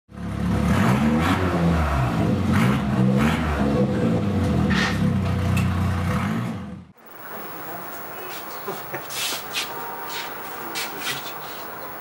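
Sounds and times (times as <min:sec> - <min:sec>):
car engine revving: 0:00.1 - 0:08.1.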